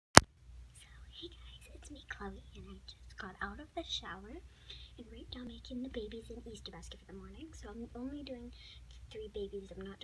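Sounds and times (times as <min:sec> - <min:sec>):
girl whispering: 0:00.8 - 0:03.6.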